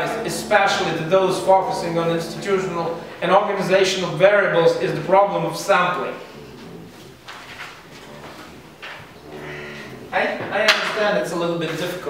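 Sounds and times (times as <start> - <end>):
man humming low: 0.0 - 3.2, 7.9 - 10.4.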